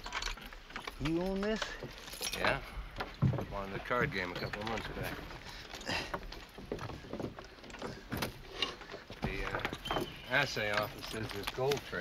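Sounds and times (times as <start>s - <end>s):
harness fittings jingling: 0.0s - 12.0s
wagon rattling: 0.0s - 12.0s.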